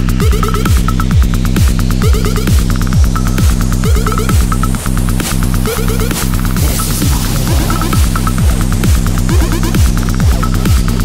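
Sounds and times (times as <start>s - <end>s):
droning buzzing bass: 0.0s - 11.0s
fast hi-hat ticks: 0.0s - 11.0s
kick drum thuds: 0.0s - 11.0s
stuttering high synth: 0.1s - 11.0s.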